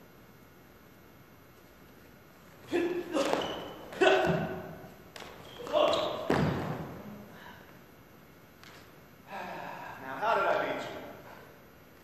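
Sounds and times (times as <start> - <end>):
man gasping: 9.3 - 10.0.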